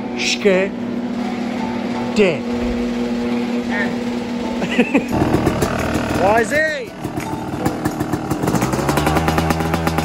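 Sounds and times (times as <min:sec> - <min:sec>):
dirt bike engine idling: 0:01.7 - 0:10.0.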